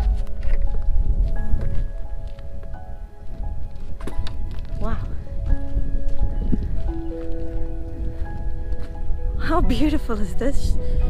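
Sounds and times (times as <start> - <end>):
slow held-note background music: 0.0 - 11.0.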